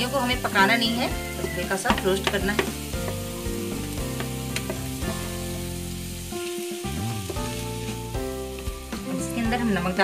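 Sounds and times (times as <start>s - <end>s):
background music: 0.0s - 10.0s
vegetables sizzling in oil: 0.0s - 10.0s.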